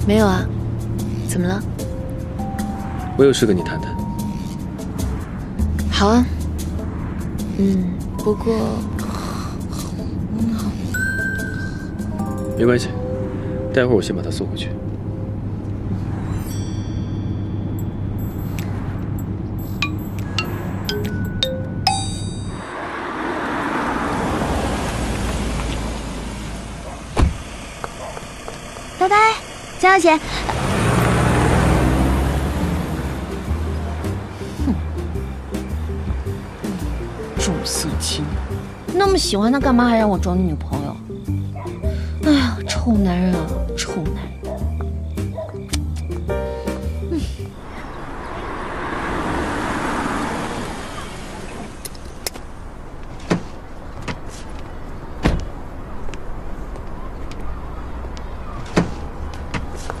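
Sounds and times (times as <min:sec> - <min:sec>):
car engine and road noise: 0:00.0 - 1:00.0
car door clunk: 0:27.1 - 0:28.1, 0:55.2 - 0:55.6.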